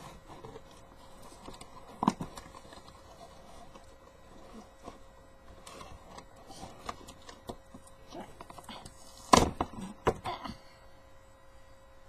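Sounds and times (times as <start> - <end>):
packaging rustling: 0.0 - 9.3.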